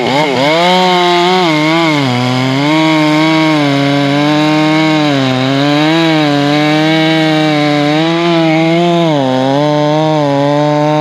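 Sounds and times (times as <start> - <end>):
chainsaw cutting log: 0.0 - 11.0.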